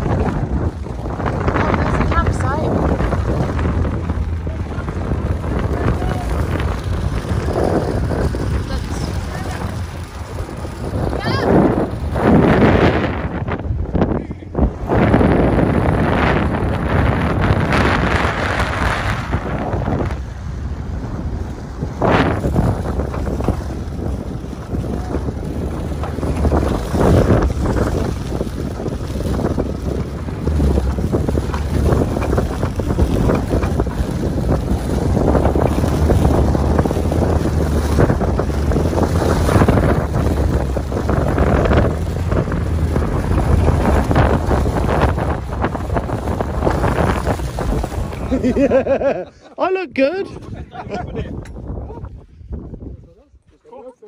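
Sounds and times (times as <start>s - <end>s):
car engine under load: 0.0s - 49.6s
wind buffeting microphone: 0.0s - 53.9s.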